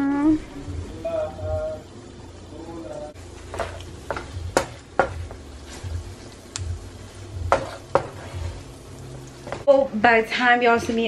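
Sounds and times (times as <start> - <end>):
butter sizzling: 0.0 - 11.0
wooden spoon knocking on a pan: 3.5 - 5.4, 7.4 - 8.4.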